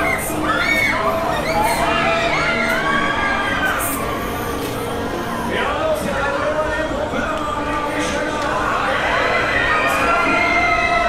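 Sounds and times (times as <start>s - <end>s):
crowd screaming on a ride: 0.0s - 5.9s, 8.0s - 11.0s.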